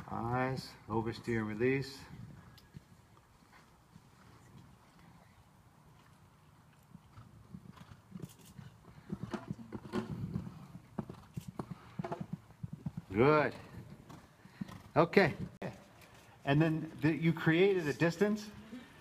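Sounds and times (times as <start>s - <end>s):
horse hooves thudding on sand: 5.9s - 16.4s.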